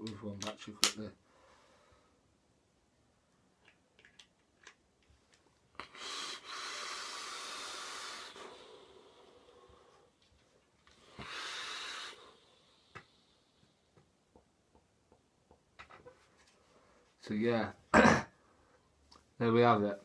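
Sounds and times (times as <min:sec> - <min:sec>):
hissing vape drag: 0:05.8 - 0:10.0, 0:11.2 - 0:13.2
exhaling vapour: 0:05.8 - 0:10.2, 0:10.9 - 0:13.8.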